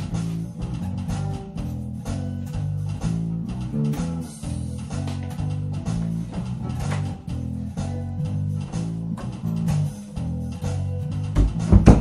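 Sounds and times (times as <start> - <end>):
guitar plucking low line: 0.0 - 12.0
steady drum beat: 11.3 - 12.0.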